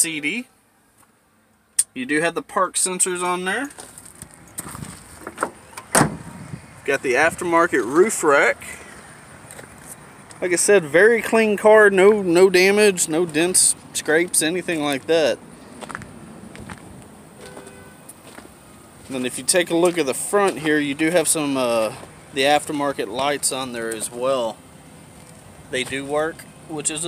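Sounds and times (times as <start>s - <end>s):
faint outdoor background noise: 0.0s - 27.0s
car door slamming: 5.2s - 6.5s.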